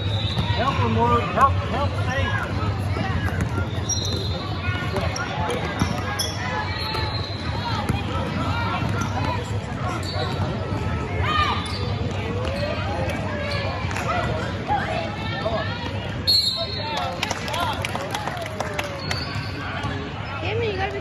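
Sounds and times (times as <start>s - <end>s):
shoe squeaks: 3.2s - 7.8s, 8.9s - 10.5s, 11.4s - 12.8s.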